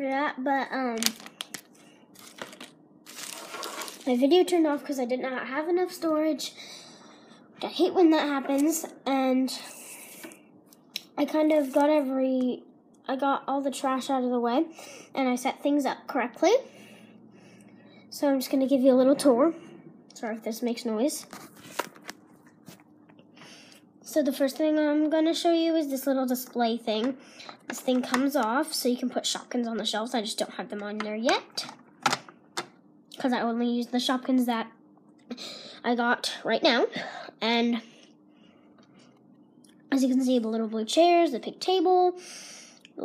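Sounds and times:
faint steady hum: 0:00.0 - 0:43.0
crinkling rustling noise: 0:00.9 - 0:04.4, 0:21.2 - 0:22.9.

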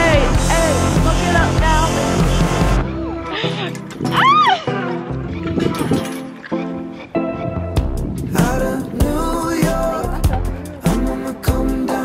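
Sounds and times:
pop song: 0:00.0 - 0:02.8, 0:07.8 - 0:12.0
woman squealing: 0:03.0 - 0:05.8.

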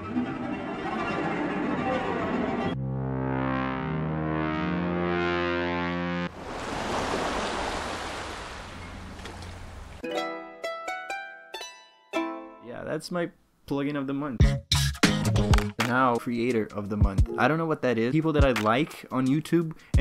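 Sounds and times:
bass synth with pitch bends: 0:02.6 - 0:06.3
plucked mandolin notes: 0:10.0 - 0:12.8.

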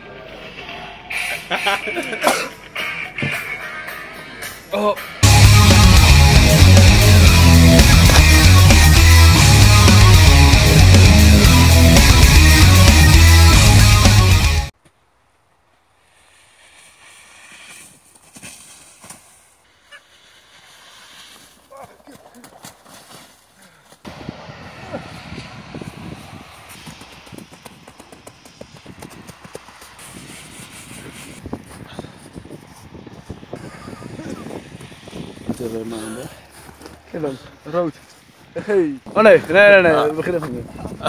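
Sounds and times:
loud music: 0:01.0 - 0:14.7
snow crunching: 0:05.3 - 0:10.0, 0:15.8 - 0:41.0.

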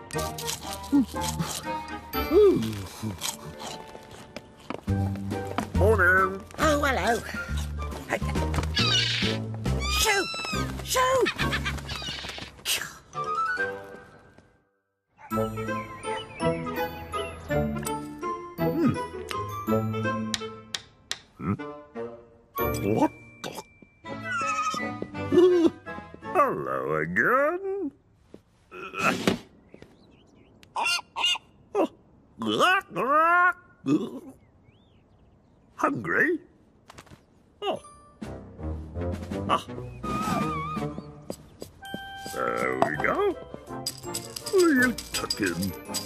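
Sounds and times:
cartoon background music: 0:04.9 - 0:12.0, 0:13.2 - 0:14.3, 0:15.2 - 0:27.2, 0:37.6 - 0:41.3, 0:42.0 - 0:46.0
seagull screeching: 0:08.7 - 0:12.5, 0:24.2 - 0:24.9, 0:30.8 - 0:31.5, 0:40.0 - 0:41.1.

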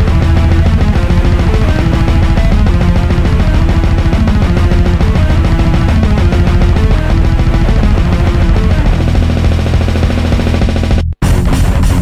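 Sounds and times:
heavy metal music: 0:00.0 - 0:12.0.

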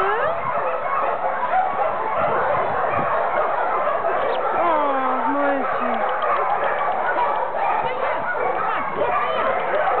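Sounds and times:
many dogs barking: 0:00.0 - 0:10.0.

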